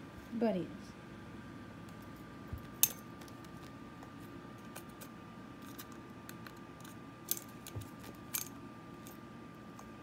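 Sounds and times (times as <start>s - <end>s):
rabbit teeth clicking on handle: 4.6s - 9.2s.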